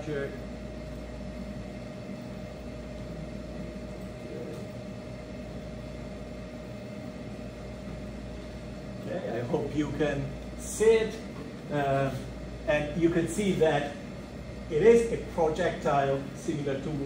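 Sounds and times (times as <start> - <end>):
faint constant whine: 0.0 - 17.0
machinery hum: 0.0 - 17.0.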